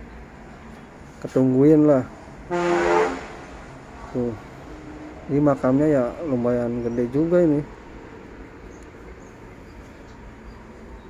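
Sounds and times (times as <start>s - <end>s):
vehicle horn toot: 2.5s - 3.4s.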